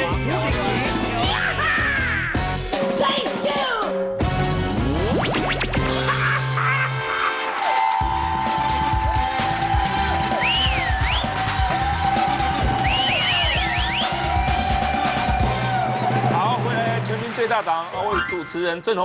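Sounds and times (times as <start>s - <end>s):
upbeat tv theme music: 0.0s - 19.0s.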